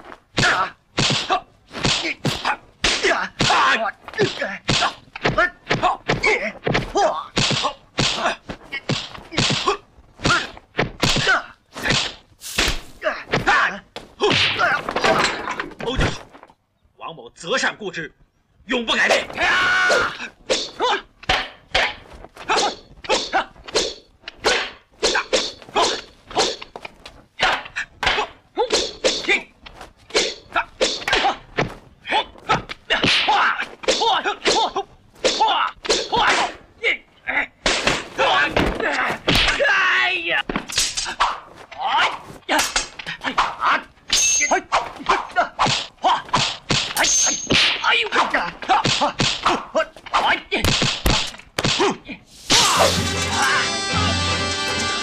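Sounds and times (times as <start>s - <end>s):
short sharp shouts and grunts: 0.3s - 12.2s, 21.7s - 26.6s, 27.4s - 29.5s, 41.0s - 50.8s, 51.6s - 53.7s
person yelling: 19.3s - 20.2s, 52.5s - 54.3s
sword clash: 44.1s - 44.6s, 46.8s - 48.2s, 52.5s - 53.6s
thin high ringing: 44.1s - 44.6s, 47.0s - 47.5s
sharp strike sounds: 52.4s - 55.0s.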